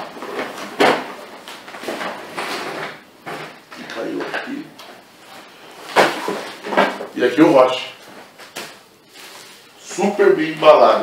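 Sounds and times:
plastic packing rustling: 0.0 - 11.0.

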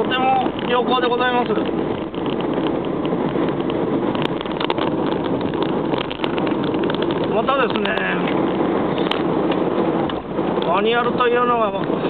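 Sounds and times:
car cabin road and engine hum: 0.0 - 12.0.

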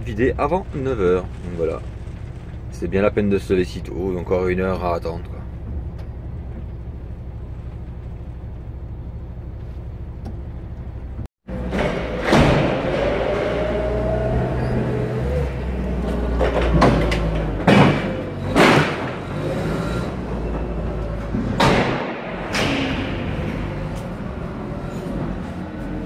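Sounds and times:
diesel truck engine idling: 0.0 - 11.6
forklift whine: 0.0 - 26.0
loud metallic bangs and thumps: 11.5 - 25.4.

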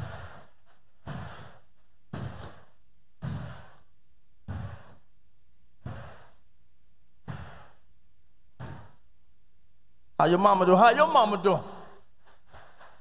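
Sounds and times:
man panting into microphone: 0.0 - 6.6, 7.2 - 9.1, 11.7 - 13.0.

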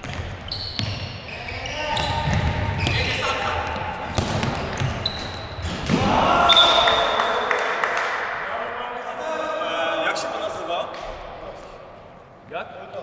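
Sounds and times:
shoes squeaking on floor: 0.0 - 5.9
players shouting: 5.8 - 7.8.

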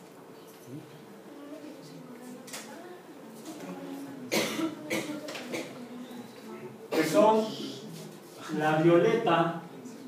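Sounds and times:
person coughing: 4.3 - 5.7.

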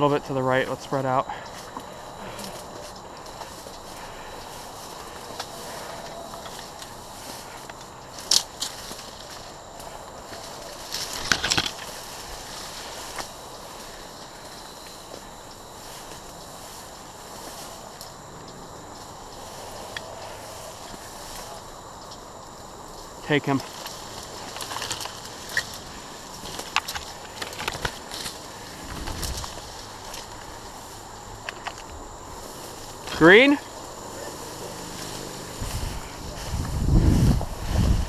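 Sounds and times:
dry grass crunching underfoot: 1.3 - 38.0.

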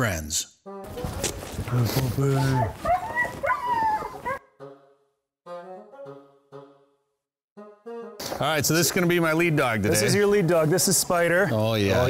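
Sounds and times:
dogs barking and yipping: 2.3 - 4.5.

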